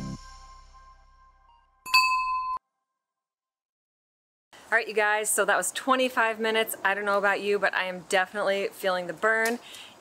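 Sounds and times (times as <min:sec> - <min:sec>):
bright bell ding: 0:01.8 - 0:02.6.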